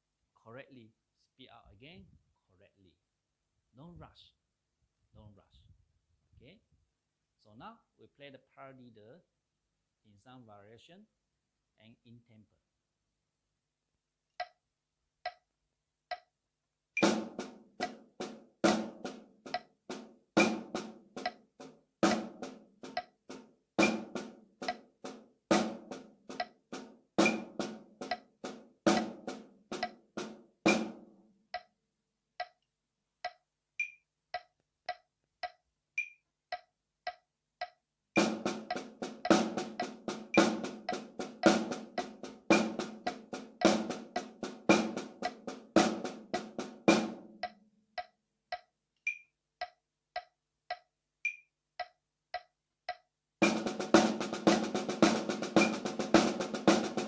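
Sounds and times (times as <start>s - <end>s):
metronome click: 14.4s - 14.6s, 15.2s - 15.5s, 16.1s - 16.3s, 27.2s - 27.5s, 31.5s - 31.7s, 32.4s - 32.6s, 33.2s - 42.1s, 47.4s - 53.6s, 55.6s - 55.8s
snare drum paradiddles: 17.0s - 31.7s, 38.2s - 47.6s, 50.2s - 57.0s.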